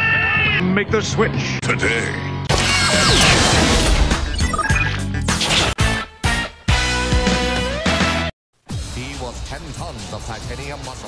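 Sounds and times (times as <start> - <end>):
music: 0.0 - 11.0
mechanical sound effects: 2.5 - 5.8.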